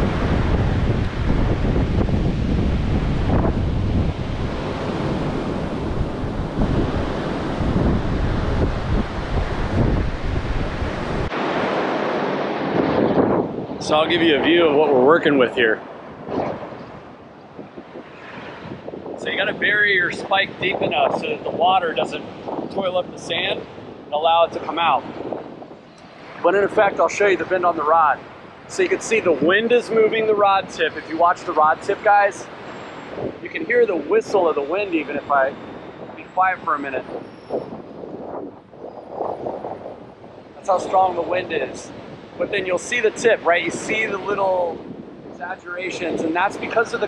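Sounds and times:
surf washing: 0.0 - 47.0
wind rushing over microphone: 0.0 - 47.0.

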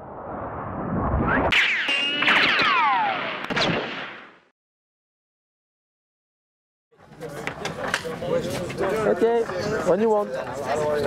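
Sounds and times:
falling tones: 0.0 - 4.4
whoosh: 0.0 - 4.4
sharp cracks: 1.5 - 4.5.

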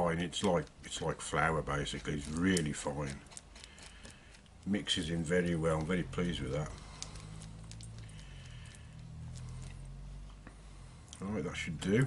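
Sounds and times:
stick stirring resin: 0.0 - 9.9.

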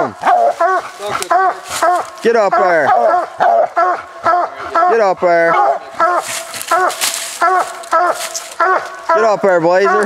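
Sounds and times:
hound barking: 0.0 - 10.0.

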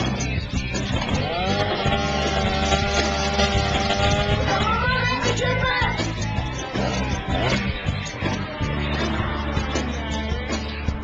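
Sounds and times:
engine revving: 0.0 - 5.0.

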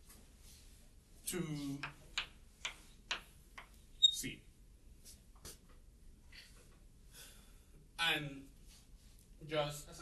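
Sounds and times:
chalk tapping on chalkboard: 1.8 - 3.8.

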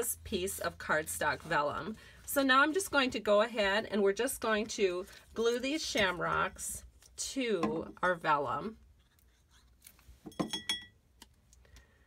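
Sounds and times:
clink with faint ringing: 10.3 - 11.0.

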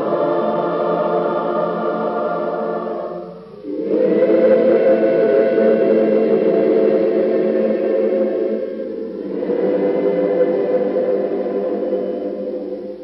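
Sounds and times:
choir holding a sustained chord: 0.0 - 13.0.

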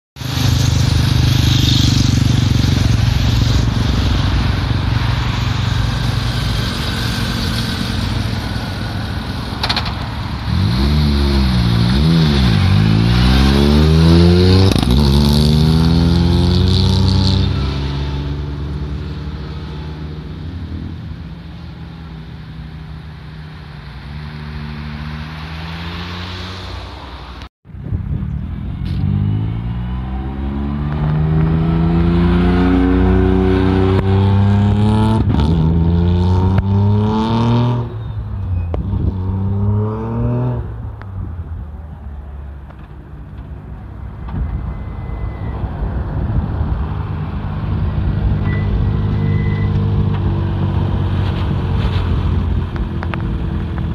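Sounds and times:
motorcycle passing: 0.2 - 27.4, 28.0 - 38.0, 38.8 - 41.7
cars passing: 0.2 - 53.9.

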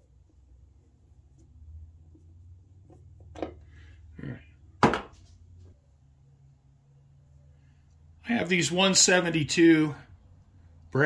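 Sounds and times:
low steady hum: 0.0 - 11.0
metal tool knocks and handling: 4.8 - 5.2.

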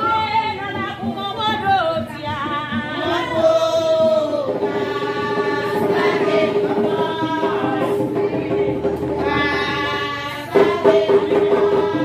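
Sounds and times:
group singing: 0.0 - 12.0.

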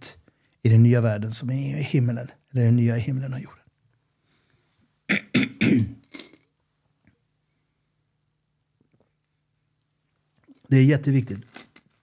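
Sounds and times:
man coughing: 5.1 - 6.3.

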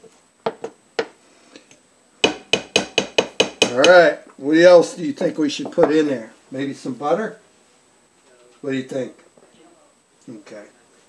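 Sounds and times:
spatula knocking on steel pot: 2.2 - 4.1.

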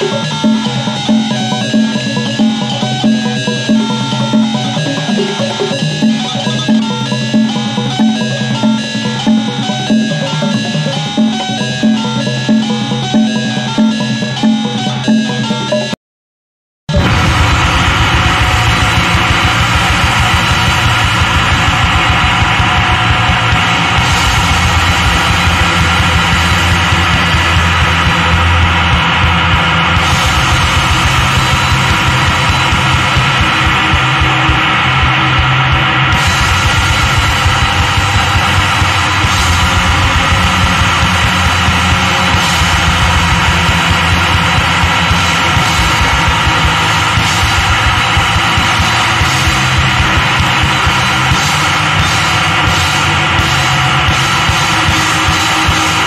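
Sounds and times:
noise punk bass and drums: 0.0 - 15.8, 16.9 - 56.0.

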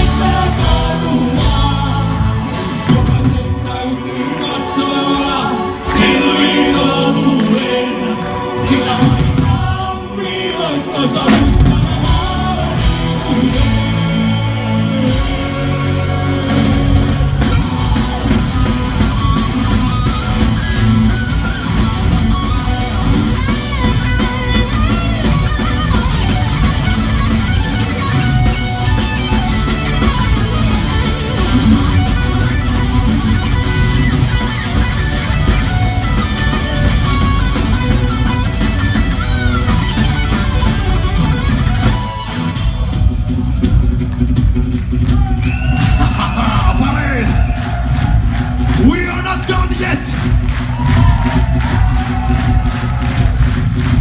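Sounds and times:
bass guitar: 0.0 - 54.0
distorted electric guitars: 0.0 - 54.0
pounding drum kit: 0.0 - 54.0.

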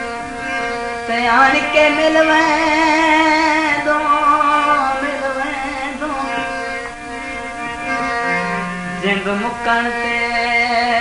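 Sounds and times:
held instrumental notes: 0.0 - 11.0.

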